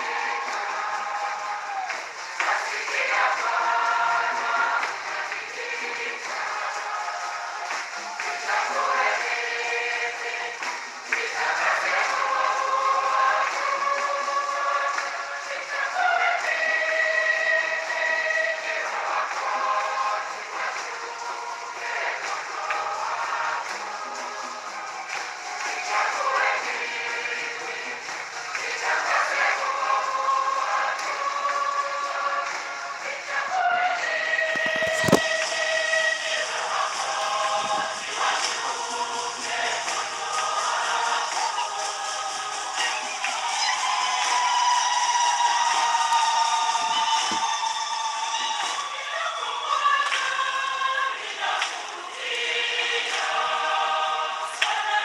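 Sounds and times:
church choir singing a hymn: 0:00.0 - 0:55.0.

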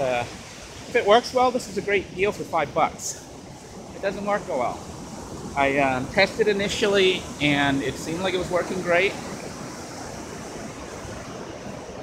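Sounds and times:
ocean surf on a beach: 0:00.0 - 0:12.0.

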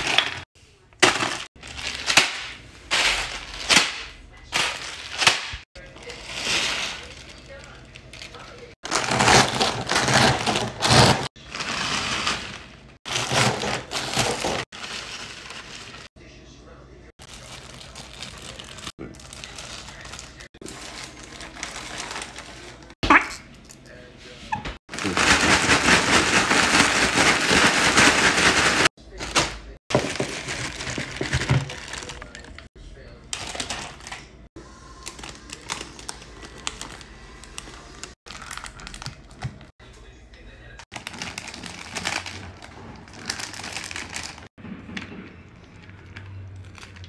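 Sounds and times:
plastic chip bags crinkling: 0:00.0 - 0:16.1, 0:17.2 - 0:23.0, 0:24.9 - 0:32.7, 0:33.3 - 0:39.7, 0:40.9 - 0:44.5
knocks and handling noises: 0:26.6 - 0:32.6.

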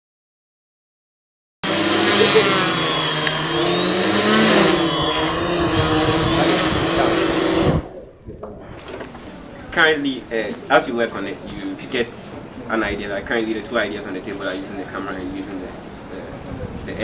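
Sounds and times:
drone motors whirring: 0:01.6 - 0:07.9.

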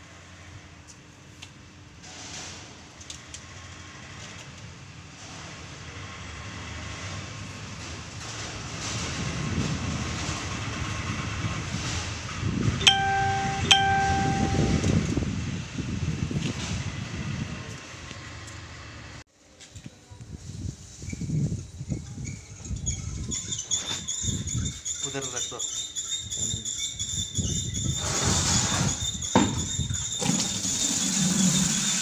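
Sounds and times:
heavy vehicle rumbling past: 0:15.0 - 0:19.2.

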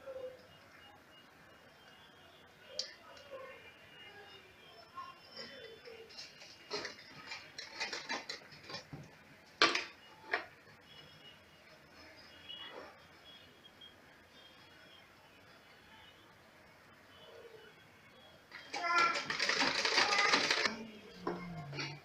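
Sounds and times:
sewing machine parts clicking: 0:18.6 - 0:20.8.

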